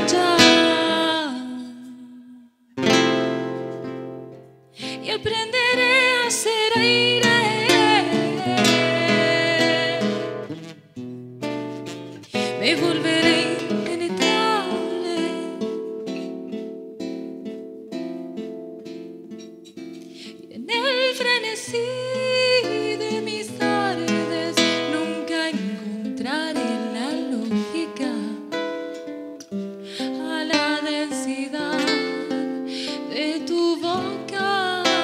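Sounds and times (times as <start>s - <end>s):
acoustic guitar picking notes: 0.0s - 2.0s, 2.8s - 35.0s
person singing folk song: 0.0s - 4.0s, 4.8s - 10.8s, 12.0s - 16.9s, 20.0s - 35.0s.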